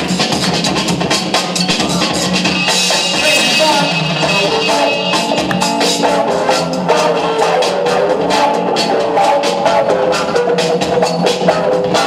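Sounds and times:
breakbeat dance music: 0:00.0 - 0:12.0.

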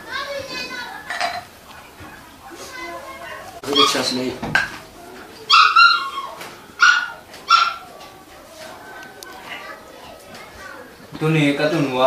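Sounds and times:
dog barking: 0:05.5 - 0:07.9.

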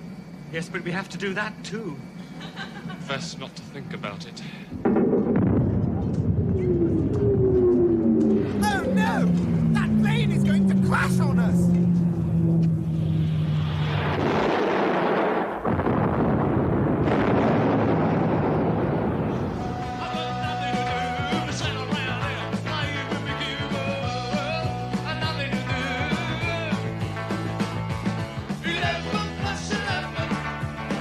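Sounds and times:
airliner engine whine: 0:00.0 - 0:25.4
loud crash rumbling: 0:04.7 - 0:11.0, 0:12.8 - 0:21.0
rock music: 0:08.3 - 0:12.2, 0:19.6 - 0:31.0.

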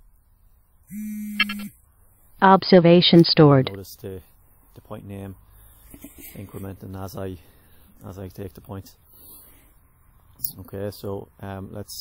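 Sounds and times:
flat electronic buzz tone: 0:00.8 - 0:01.9.

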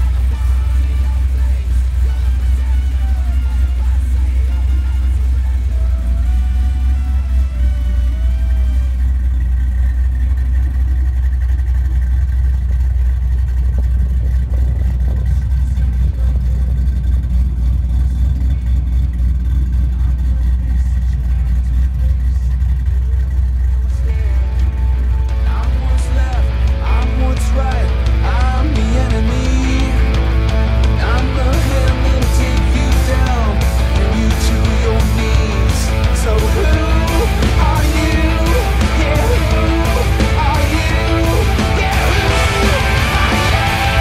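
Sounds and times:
car engine idling: 0:00.0 - 0:44.0
background music: 0:23.8 - 0:44.0.

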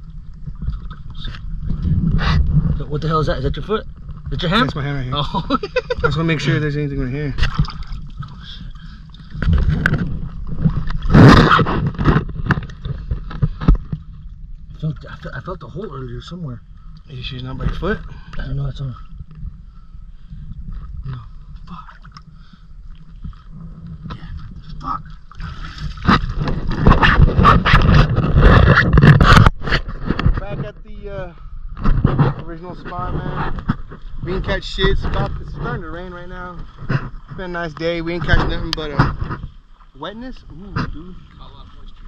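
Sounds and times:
low rumble: 0:00.0 - 0:29.6
water sloshing and splashing: 0:00.0 - 0:30.3, 0:31.8 - 0:42.0
rough scraping against microphone: 0:00.0 - 0:42.0
scrapes and knocks: 0:09.3 - 0:14.1, 0:25.6 - 0:30.8, 0:31.8 - 0:39.6.

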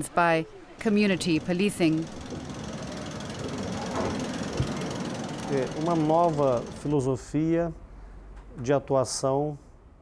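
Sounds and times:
distant city traffic rattle: 0:00.8 - 0:07.4.

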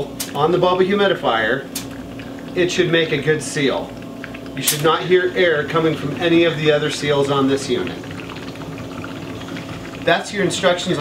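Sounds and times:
oxygen bubbling through water: 0:00.0 - 0:11.0
oxygen concentrator humming: 0:00.0 - 0:11.0.

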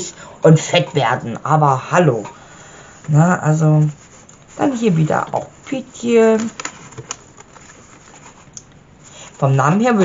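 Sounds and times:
paper pages rustling: 0:03.8 - 0:10.0.

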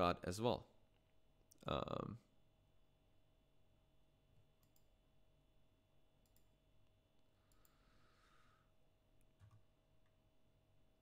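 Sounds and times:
soft clicks: 0:04.6 - 0:05.0, 0:06.2 - 0:07.8.

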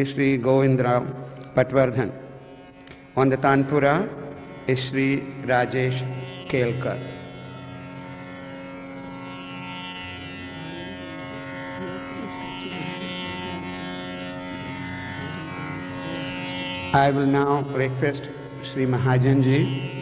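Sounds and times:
tanpura drone: 0:00.0 - 0:20.0.

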